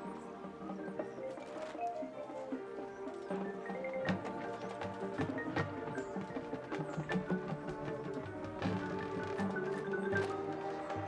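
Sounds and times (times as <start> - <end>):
marching band playing: 3.8 - 11.0.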